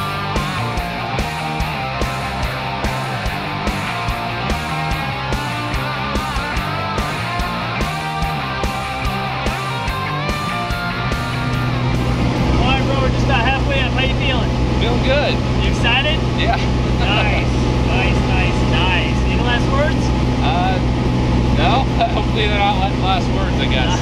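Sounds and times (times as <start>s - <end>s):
aircraft engine drone in cabin: 0.0s - 24.0s
music: 0.0s - 24.0s
people talking: 12.4s - 20.9s, 21.5s - 24.0s.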